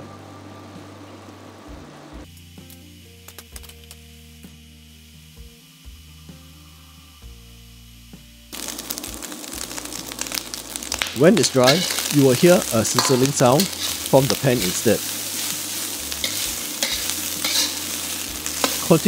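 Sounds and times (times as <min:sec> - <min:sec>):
quiet background music: 0:00.0 - 0:19.0
bubbling hiss of liquid boiling: 0:01.5 - 0:19.0
meat sizzling: 0:02.2 - 0:19.0.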